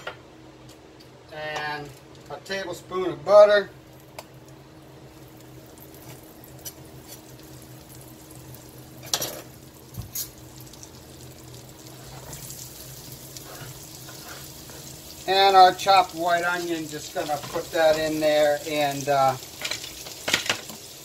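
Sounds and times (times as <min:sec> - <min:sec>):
low steady hum: 0:00.0 - 0:21.0
butter sizzling in frying pan: 0:04.0 - 0:21.0.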